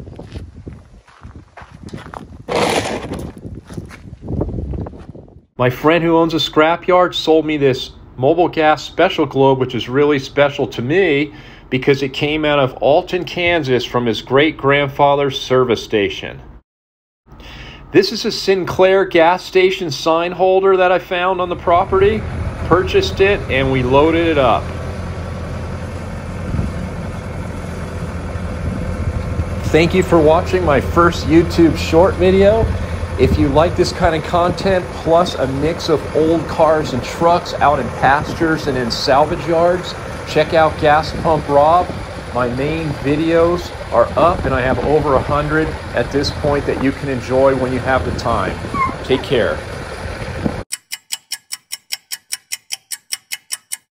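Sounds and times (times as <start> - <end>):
loader engine idling: 20.9 - 50.6
rapid ticking clicks: 50.7 - 53.9.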